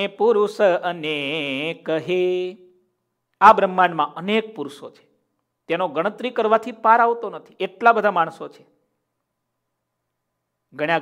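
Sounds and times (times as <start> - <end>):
man chanting: 0.0 - 2.7, 3.4 - 5.0.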